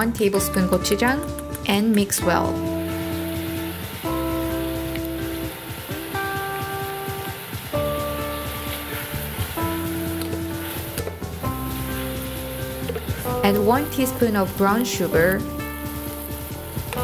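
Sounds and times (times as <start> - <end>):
soft background music chords: 0.0 - 17.0
food sizzling in a pot: 2.4 - 17.0.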